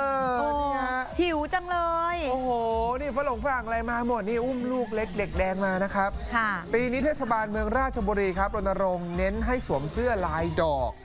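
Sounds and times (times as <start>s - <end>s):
woman cooing aww: 0.0s - 1.1s.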